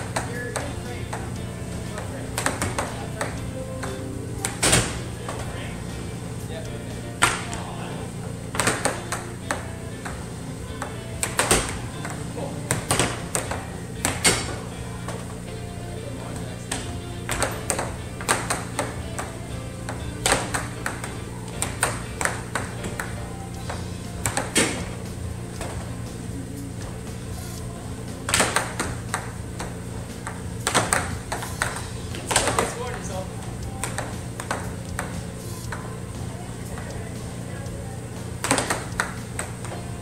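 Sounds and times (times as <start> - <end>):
air hockey puck clacking: 0.0 - 5.6, 7.2 - 7.6, 8.5 - 15.4, 16.4 - 25.9, 28.2 - 36.0, 38.4 - 40.0
steady low hum: 0.0 - 40.0.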